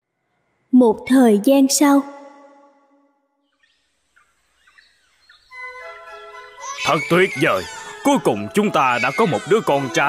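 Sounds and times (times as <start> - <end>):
faint bird chirps: 2.2 - 9.9.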